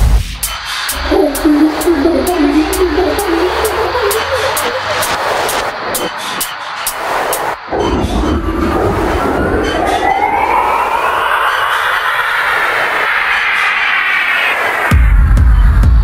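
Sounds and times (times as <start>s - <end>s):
heavy kick drum and bass: 0.0s - 5.2s, 14.9s - 16.0s
noisy rising sweep: 0.9s - 14.9s.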